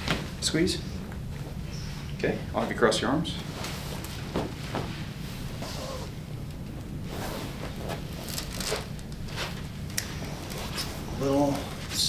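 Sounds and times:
low room hum: 0:00.0 - 0:12.0
clothing rustling: 0:03.4 - 0:06.2, 0:06.8 - 0:12.0.

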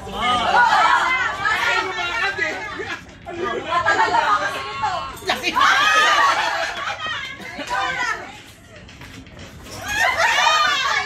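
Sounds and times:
people shouting and laughing: 0:00.0 - 0:11.0.

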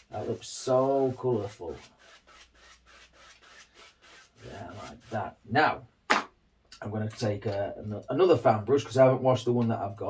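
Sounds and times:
brush swishing on canvas: 0:00.0 - 0:05.4.

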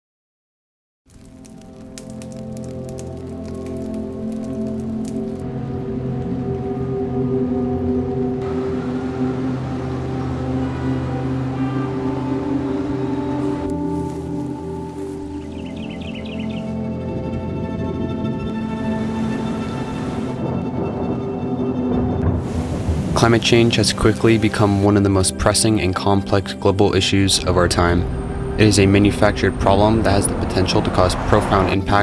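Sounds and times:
ambient music chords: 0:01.2 - 0:32.0.

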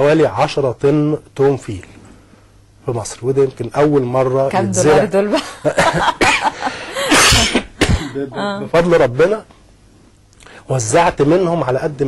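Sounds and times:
man coughing: 0:06.2 - 0:08.7.

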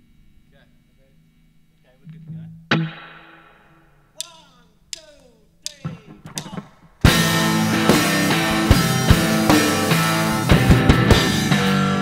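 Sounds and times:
guitar notes sliding down: 0:05.8 - 0:12.0
guitar chord ringing out: 0:07.0 - 0:12.0.

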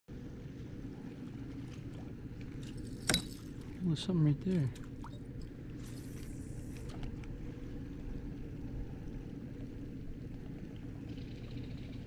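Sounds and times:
low rumble: 0:04.8 - 0:12.0.

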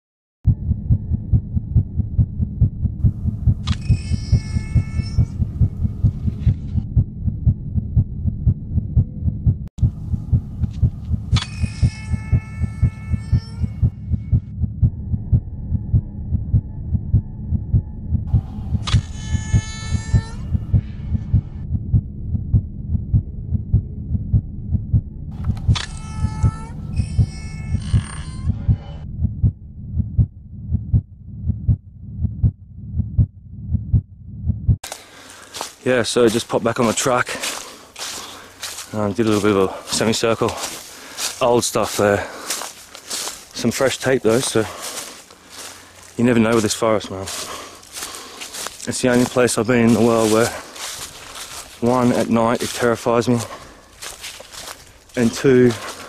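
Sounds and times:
heartbeat pulsing: 0:00.5 - 0:56.0.

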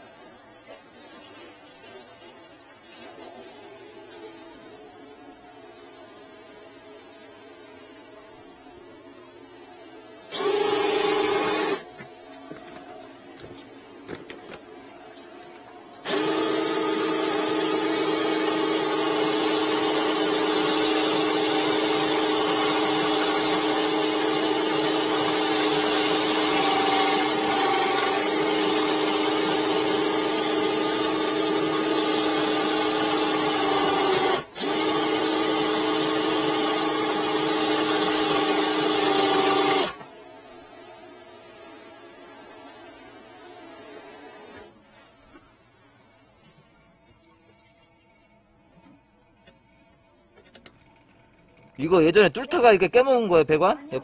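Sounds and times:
cordless drill whine: 0:10.3 - 0:11.9, 0:16.0 - 0:40.0.

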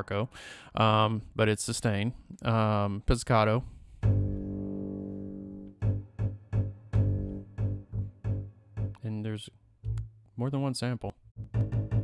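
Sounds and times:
double bass low note: 0:04.0 - 0:09.0
plucked pizzicato bass notes: 0:04.0 - 0:09.0, 0:09.8 - 0:10.2, 0:11.4 - 0:12.0.

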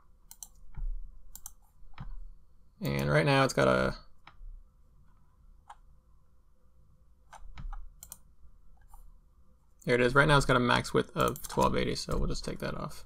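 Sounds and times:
computer mouse and keyboard clicks: 0:00.2 - 0:02.2, 0:07.3 - 0:09.0, 0:11.2 - 0:12.3.

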